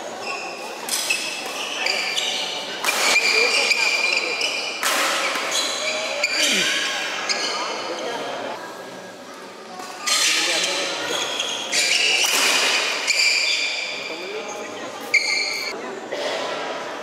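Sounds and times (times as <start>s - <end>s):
voices in a hall: 0.0s - 17.0s
shoes squeaking on court: 0.2s - 4.8s, 15.0s - 15.8s.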